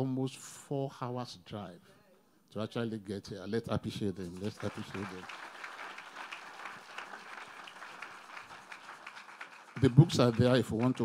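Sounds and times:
people clapping: 0:04.2 - 0:11.0.

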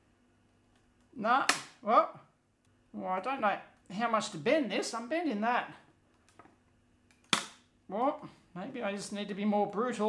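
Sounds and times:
sharp crack of plastic plate: 0:01.5 - 0:01.8, 0:07.1 - 0:07.7.

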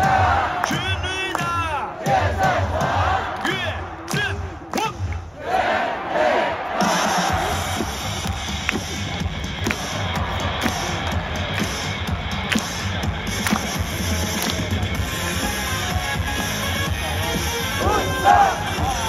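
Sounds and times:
crowd shouting: 0:00.0 - 0:08.0, 0:17.1 - 0:19.0
stadium music with steady beat: 0:00.0 - 0:19.0.

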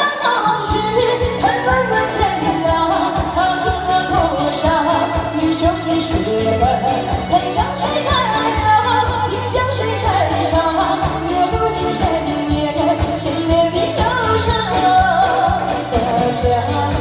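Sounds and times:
pop backing track: 0:00.0 - 0:17.0
woman singing: 0:00.0 - 0:17.0.

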